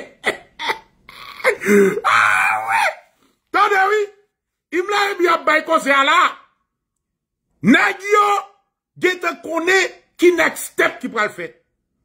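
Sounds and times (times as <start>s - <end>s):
man crying out: 0.0s - 4.0s.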